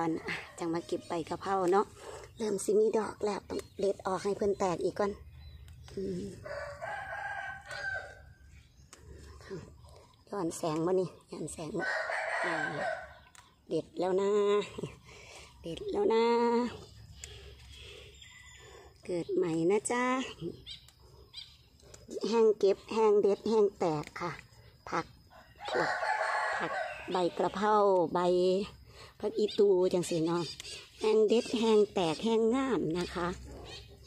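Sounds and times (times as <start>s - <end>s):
woman speaking: 0.0s - 5.2s, 9.4s - 13.1s, 13.7s - 15.0s, 15.6s - 16.9s, 19.0s - 20.7s, 22.1s - 33.6s
rooster crowing: 6.4s - 8.3s, 11.8s - 13.2s, 25.4s - 27.2s.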